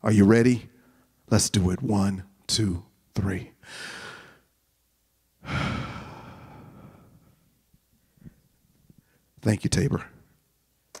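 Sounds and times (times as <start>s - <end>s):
man sighing into a microphone: 5.4s - 7.3s.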